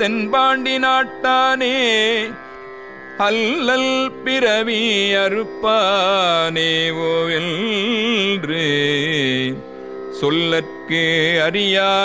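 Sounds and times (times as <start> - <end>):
person singing devotional hymn: 3.2 - 9.6.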